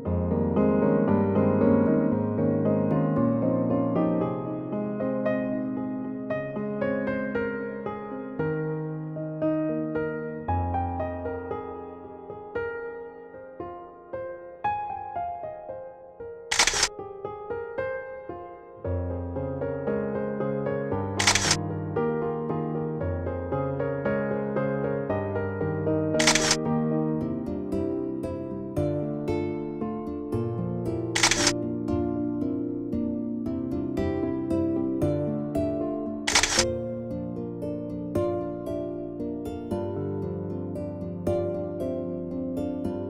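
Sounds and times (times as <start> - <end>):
gentle piano music: 0.0 - 43.0
camera shutter click: 16.5 - 16.9, 21.2 - 21.6, 26.2 - 26.6, 31.2 - 31.6, 36.3 - 36.7
plucked string background music: 23.6 - 43.0.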